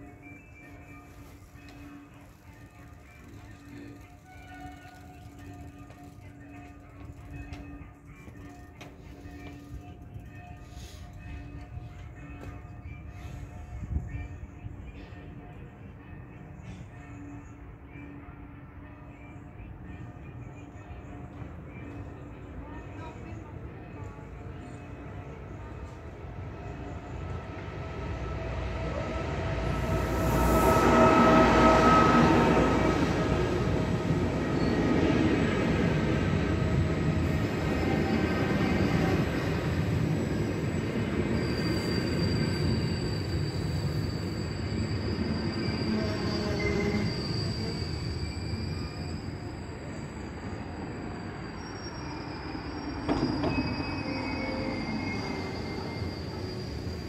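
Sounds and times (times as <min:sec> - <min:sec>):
electric train passing: 0:00.0 - 0:57.0.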